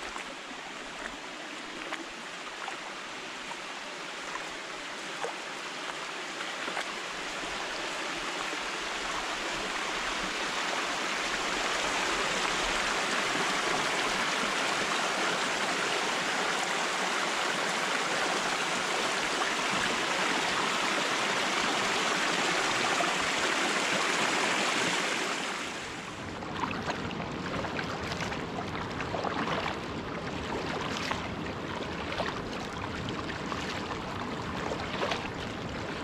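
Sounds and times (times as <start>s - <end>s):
creek water rushing over rocks: 0.0s - 36.0s.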